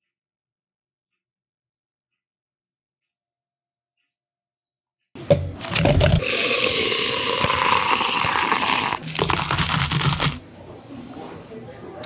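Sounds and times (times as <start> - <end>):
ice cubes clattering in cup: 5.6 - 10.4
milk pouring into plastic cup: 5.6 - 10.4.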